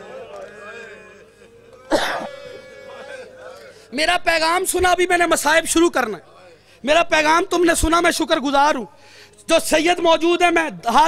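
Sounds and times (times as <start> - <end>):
man coughing: 1.8 - 2.6.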